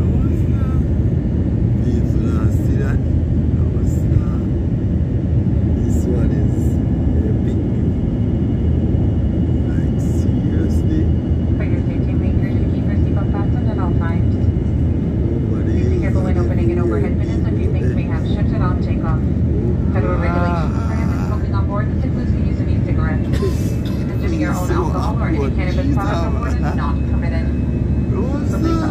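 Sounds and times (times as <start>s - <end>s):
jet engine cabin rumble: 0.0s - 28.9s.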